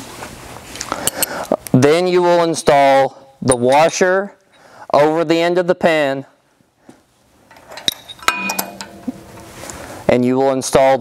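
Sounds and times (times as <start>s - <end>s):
metal washer clinking: 7.5s - 9.7s.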